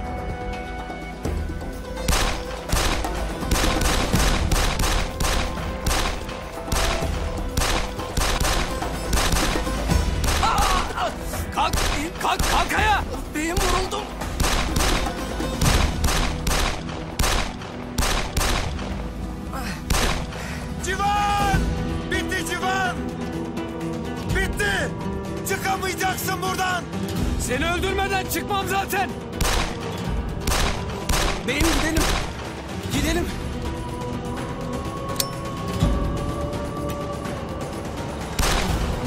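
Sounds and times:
background music: 0:00.0 - 0:39.0
handgun shots: 0:02.1 - 0:09.6, 0:14.4 - 0:18.8, 0:29.4 - 0:29.8, 0:30.4 - 0:31.4.

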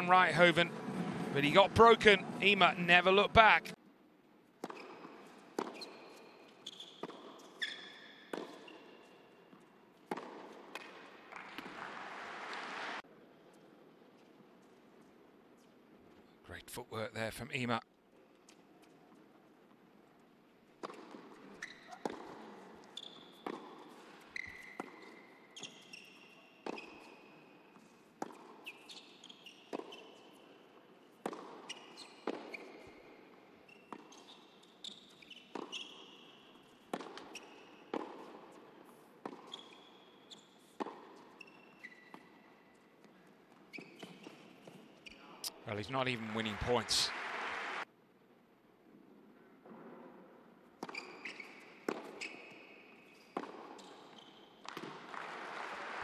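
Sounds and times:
sneaker squeaks on court: 0:04.6 - 0:09.4, 0:20.8 - 0:38.3, 0:39.2 - 0:42.9, 0:43.5 - 0:45.5, 0:50.8 - 0:54.8
tennis ball bounces: 0:04.6 - 0:12.1, 0:20.8 - 0:26.0, 0:26.6 - 0:32.9, 0:33.7 - 0:39.8, 0:40.7 - 0:42.4, 0:50.8 - 0:52.3, 0:53.1 - 0:55.2.

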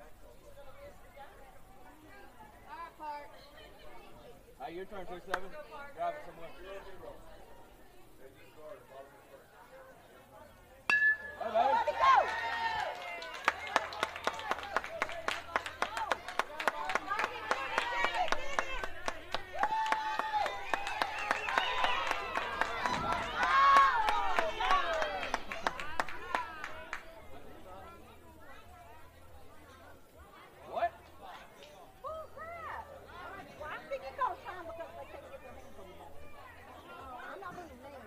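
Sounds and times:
bat hitting ball ping: 0:10.9 - 0:11.6
crowd cheering and yelling: 0:10.9 - 0:26.8
crowd clapping: 0:11.9 - 0:27.2.

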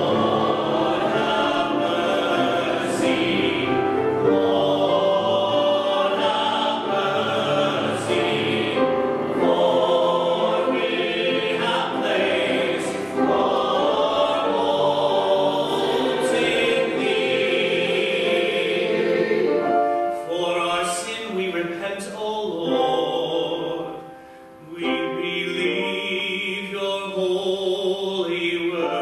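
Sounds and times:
church choir singing: 0:00.0 - 0:29.0.

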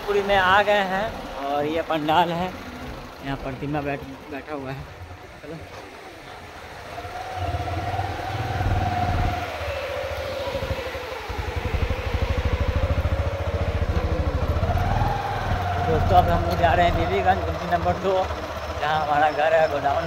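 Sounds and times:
engine low pulsing: 0:00.0 - 0:20.0
long wavering tone: 0:06.8 - 0:17.1.

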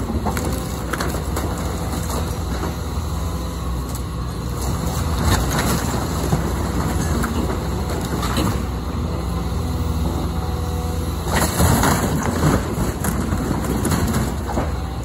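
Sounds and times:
wood cracking and splintering: 0:00.0 - 0:08.6, 0:11.2 - 0:15.0
excavator diesel engine running: 0:00.0 - 0:15.0.

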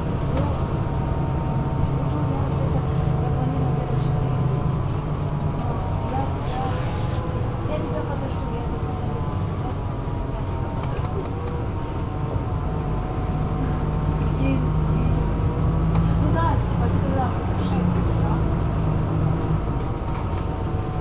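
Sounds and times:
bus engine drone: 0:00.0 - 0:21.0
faint passenger voices: 0:00.0 - 0:21.0.

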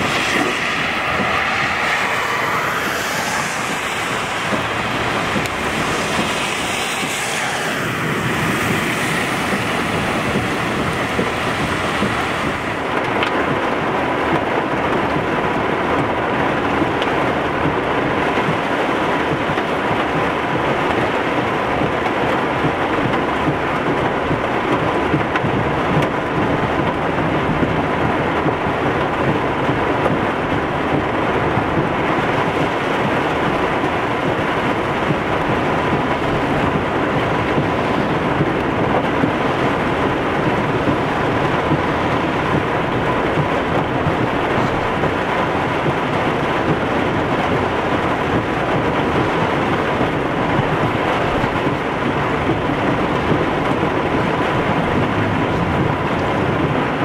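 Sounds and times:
heavy rain on car roof: 0:00.0 - 0:57.0
tyres washing through floodwater: 0:00.0 - 0:57.0.

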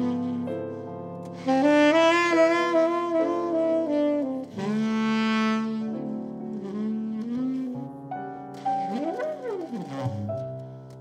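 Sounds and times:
piano: 0:00.0 - 0:11.0
saxophone: 0:00.0 - 0:11.0
double bass: 0:08.7 - 0:10.8.

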